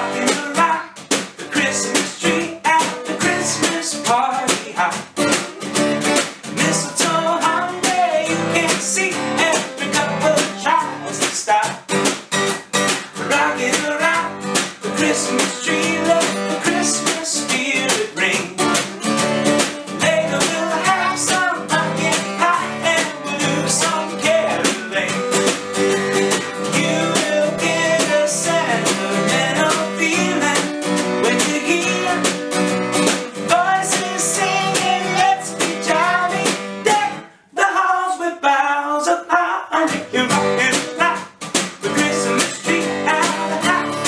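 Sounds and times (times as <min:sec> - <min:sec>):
snare drum rock beat: 0:00.0 - 0:37.2, 0:40.3 - 0:44.0
strummed acoustic guitars: 0:00.0 - 0:38.2, 0:39.7 - 0:44.0.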